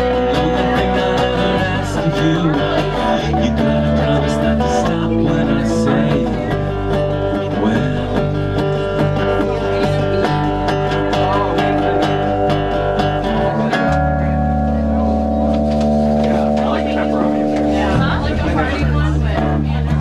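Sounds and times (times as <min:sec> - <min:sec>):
acoustic guitar strumming: 0:00.0 - 0:20.0
electric bass: 0:00.0 - 0:20.0.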